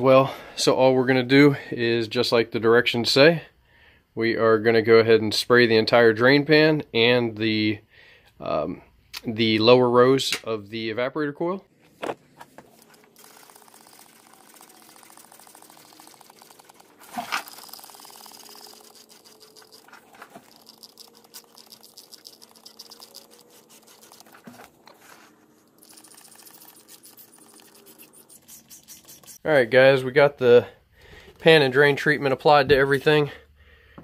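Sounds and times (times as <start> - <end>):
trigger sprayer squirts: 12.7 - 25.0, 25.8 - 29.4.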